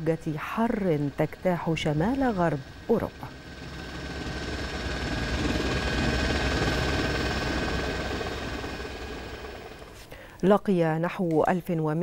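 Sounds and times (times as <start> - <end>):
helicopter rotor and engine: 0.0 - 10.2.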